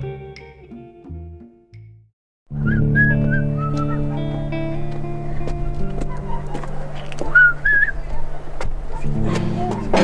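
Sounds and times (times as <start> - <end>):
whistled notes: 2.6 - 4.2, 7.3 - 8.0.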